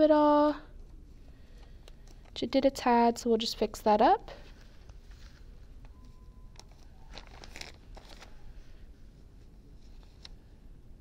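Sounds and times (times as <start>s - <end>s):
faint rustling of vinyl sheet: 0.0s - 11.0s.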